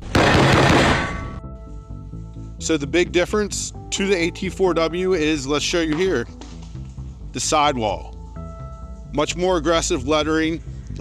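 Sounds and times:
loud blast of noise: 0.0s - 1.4s
background music with held notes: 0.9s - 11.0s.

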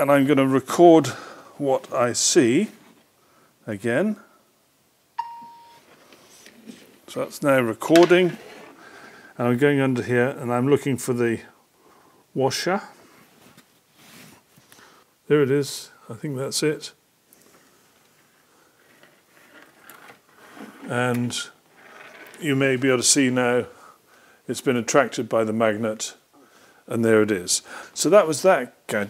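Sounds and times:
smartphone chime: 5.2s - 5.8s.

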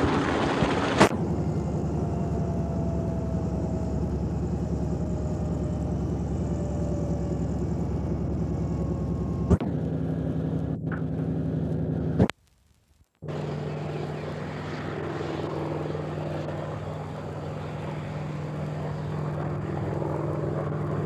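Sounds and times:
helicopter engine and rotor: 0.0s - 11.6s, 13.2s - 21.0s.

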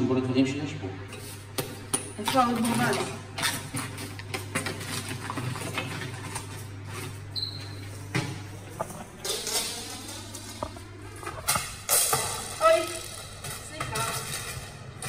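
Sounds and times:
steady low hum: 0.0s - 15.0s
rummaging through plastic items: 2.2s - 15.0s.

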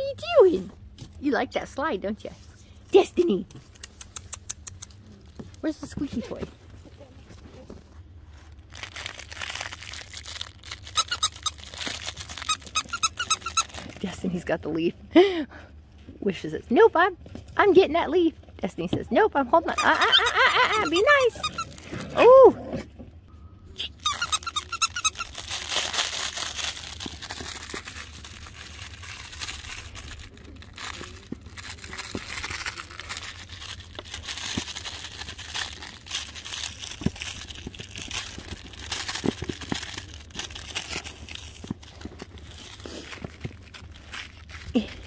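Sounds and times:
toy crinkling rustle: 3.6s - 14.2s, 19.8s - 21.9s, 23.8s - 45.0s
dog squeaky toy squeaking: 10.8s - 11.7s, 12.4s - 13.8s, 19.7s - 21.7s, 23.8s - 25.6s.

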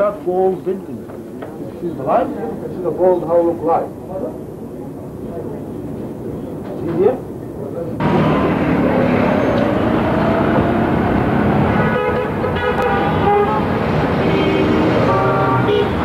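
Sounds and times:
street traffic: 0.0s - 16.0s
car horns honking: 11.6s - 16.0s.

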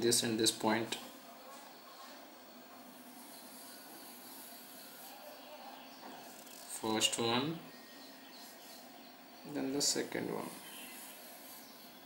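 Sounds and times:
felt-tip pen hissing on paper: 10.5s - 11.9s.

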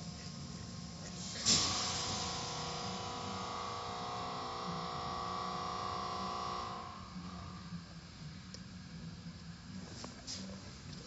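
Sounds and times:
car wash motor whine: 0.0s - 11.0s.

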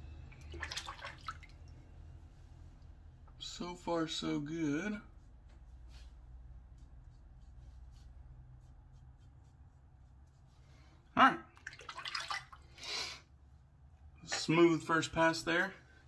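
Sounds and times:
water splashing: 0.3s - 1.8s, 11.6s - 12.7s.

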